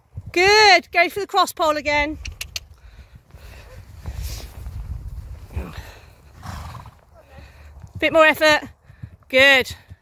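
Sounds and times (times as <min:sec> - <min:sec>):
muffled horse hoofbeats: 0:06.9 - 0:10.0.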